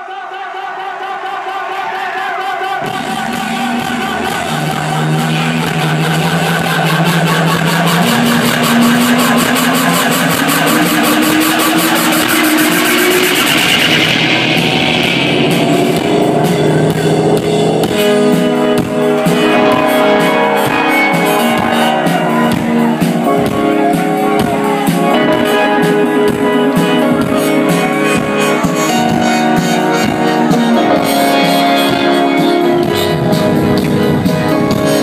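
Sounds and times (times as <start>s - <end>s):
sustained synth chord: 2.8s - 34.7s
bassline: 2.8s - 35.0s
fast pulsing beat: 2.8s - 35.0s.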